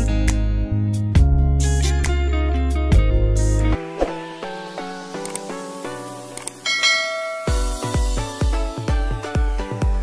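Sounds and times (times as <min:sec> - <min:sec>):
bright bell ding: 0:06.6 - 0:08.0.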